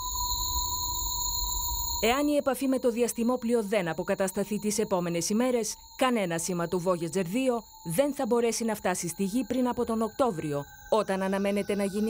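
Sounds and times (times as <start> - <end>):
electronic drone of high tones: 0.0 - 12.0.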